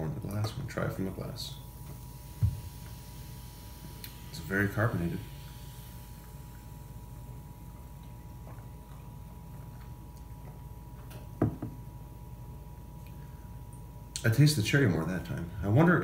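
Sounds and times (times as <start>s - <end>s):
faint room hum: 0.0s - 16.0s
glass knocking on countertop: 11.4s - 11.8s.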